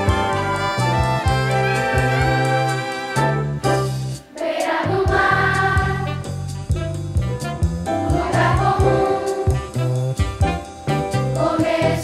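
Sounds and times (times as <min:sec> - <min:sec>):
jazz bass and drums: 0:00.0 - 0:04.2, 0:04.8 - 0:12.0
children's choir singing: 0:04.3 - 0:06.2, 0:08.2 - 0:09.6, 0:11.4 - 0:12.0.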